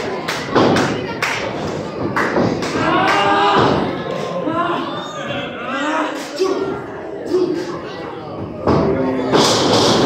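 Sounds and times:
voices shouting in a hall: 0.0 - 9.2.

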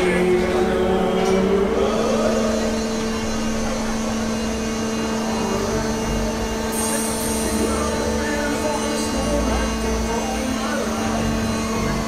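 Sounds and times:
fairground ride machine hum: 0.0 - 12.0.

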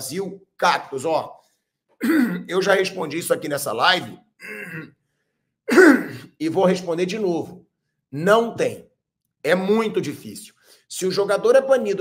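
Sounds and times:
man clearing his throat: 2.0 - 2.5, 4.4 - 5.0, 5.7 - 6.4.

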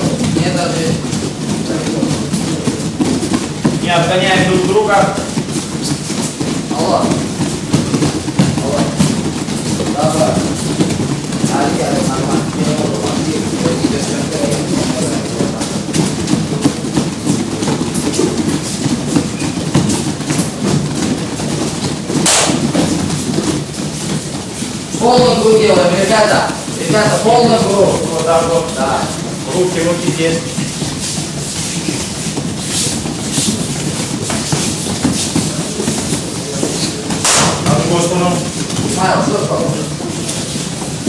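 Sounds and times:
barefoot footfalls on mats: 0.0 - 41.0
brief sharp noise: 22.3 - 22.7, 37.3 - 37.7.

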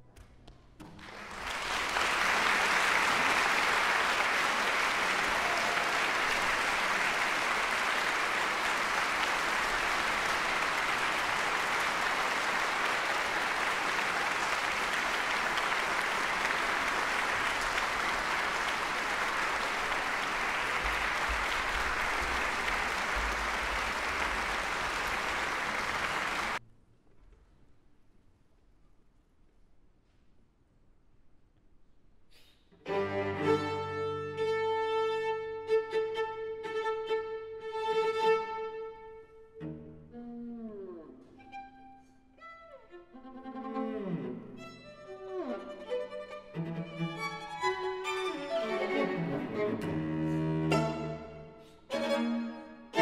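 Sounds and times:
audience applauding: 1.0 - 26.6.

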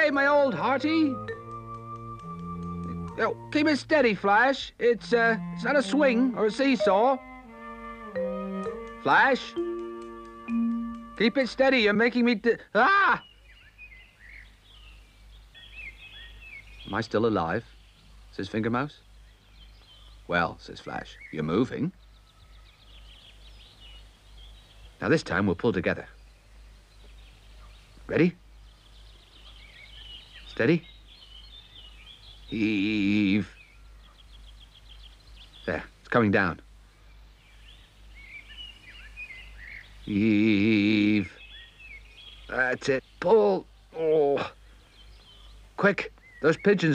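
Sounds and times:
birds chirping: 0.0 - 46.9.

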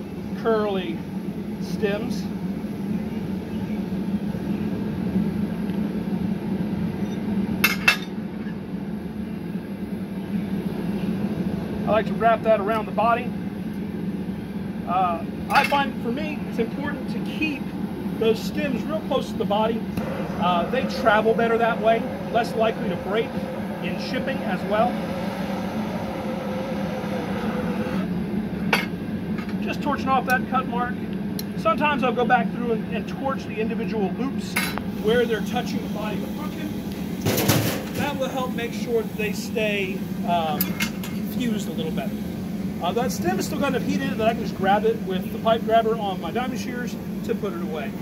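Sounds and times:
electric fan droning: 0.0 - 48.0
gas torch burning: 15.2 - 29.4, 34.6 - 48.0.

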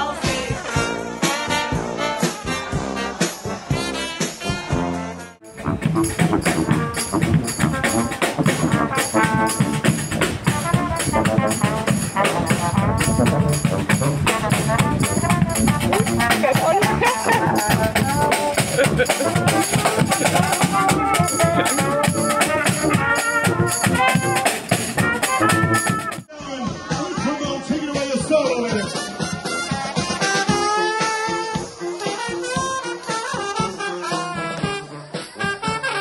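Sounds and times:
dixieland brass band playing swing: 0.0 - 26.3, 28.8 - 36.0
sousaphone bass line: 5.5 - 26.2
snare and bass drum beat: 5.5 - 33.9.

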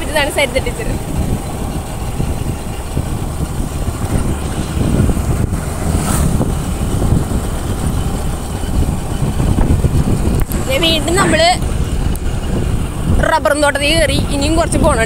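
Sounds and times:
motorcycle engine: 0.0 - 15.0
tyre noise on road: 0.0 - 15.0
wind rumble on microphone: 0.0 - 15.0.

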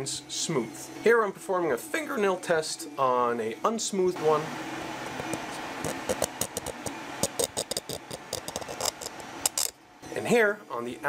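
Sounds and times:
fingernail scraping plastic ridges: 5.1 - 9.7.

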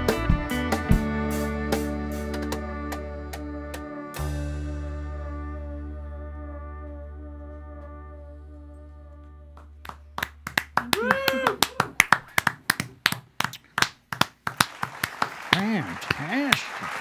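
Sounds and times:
small group clapping: 9.6 - 17.0
cheers and whoops: 10.8 - 12.0.

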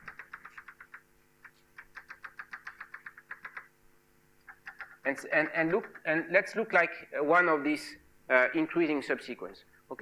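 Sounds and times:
chalk tapping on a blackboard: 0.0 - 3.7, 4.4 - 6.2.

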